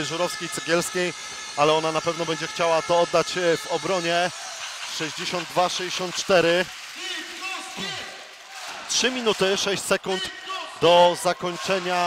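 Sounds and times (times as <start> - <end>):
commentator speaking: 0.0 - 8.1, 8.9 - 12.0
faint voices in large hall: 0.0 - 12.0.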